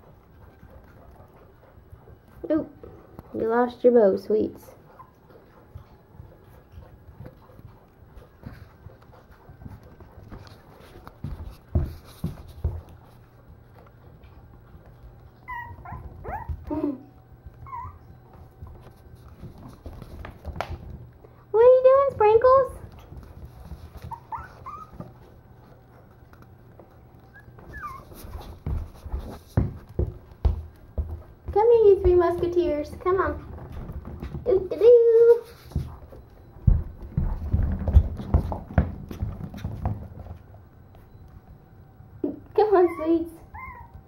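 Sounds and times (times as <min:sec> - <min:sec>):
puppy paws tapping on wooden floor: 0:00.0 - 0:41.6
puppy whimpering in high squeaks: 0:15.4 - 0:16.5, 0:17.6 - 0:18.1, 0:24.1 - 0:25.0, 0:27.3 - 0:28.2, 0:42.8 - 0:44.0.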